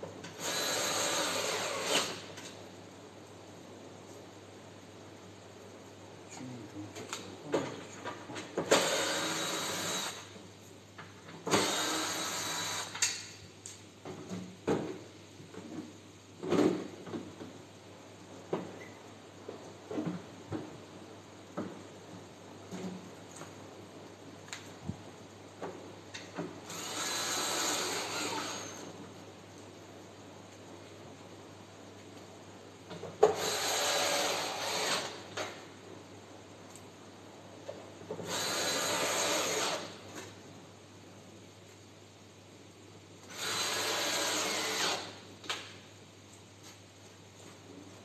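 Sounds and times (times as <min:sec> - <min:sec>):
cordless drill driving screws: 0:00.4 - 0:02.2, 0:08.7 - 0:10.3, 0:11.5 - 0:13.0, 0:26.6 - 0:28.8, 0:33.2 - 0:35.2, 0:38.2 - 0:40.0, 0:43.3 - 0:45.2.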